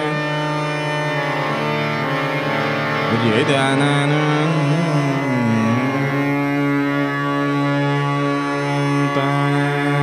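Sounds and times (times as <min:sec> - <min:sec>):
classical raga melody: 0:00.0 - 0:10.0
steady drone: 0:00.0 - 0:10.0.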